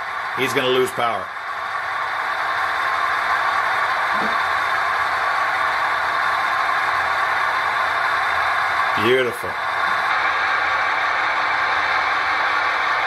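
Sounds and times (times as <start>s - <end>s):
model locomotive running: 0.0s - 13.0s.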